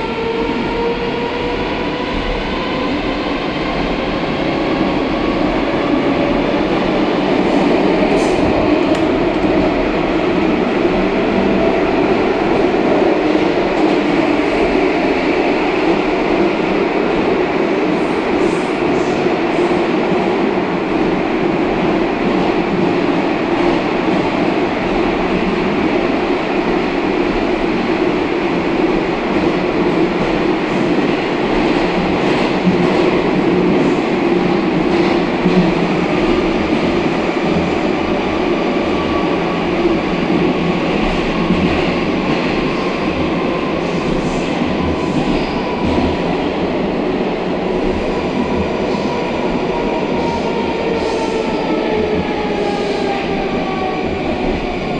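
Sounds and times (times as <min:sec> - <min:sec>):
train rumbling through tunnel: 0:00.0 - 0:54.9.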